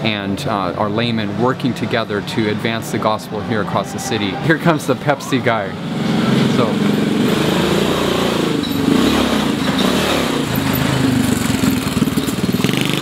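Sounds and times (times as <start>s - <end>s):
small motorcycle engine passing: 4.7s - 13.0s.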